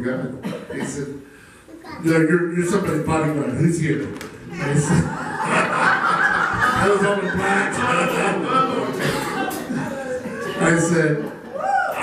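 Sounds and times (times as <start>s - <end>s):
people talking: 0.0s - 1.2s, 1.8s - 11.4s
people laughing: 4.5s - 12.0s.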